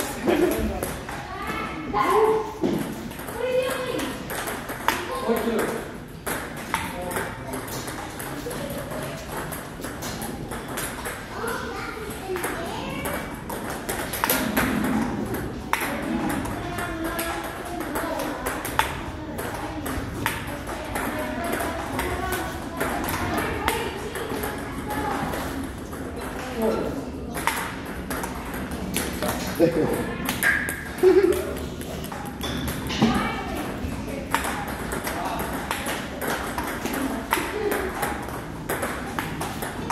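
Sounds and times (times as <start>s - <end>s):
table tennis ball clicks: 12.4s - 24.5s, 27.4s - 29.4s.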